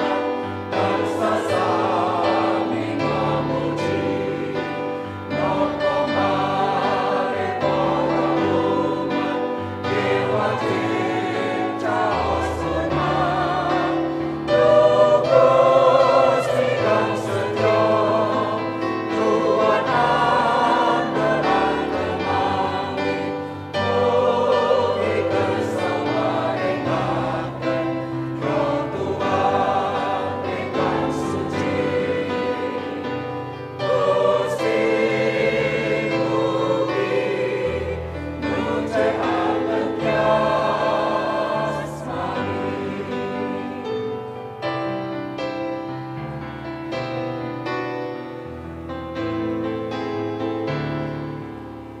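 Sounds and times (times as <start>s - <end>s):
choir singing a hymn: 0.0s - 52.0s.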